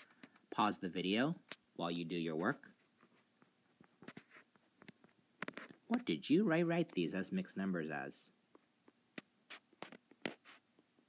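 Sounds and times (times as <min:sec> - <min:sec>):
stylus scratching on touchscreen: 0:04.1 - 0:04.5.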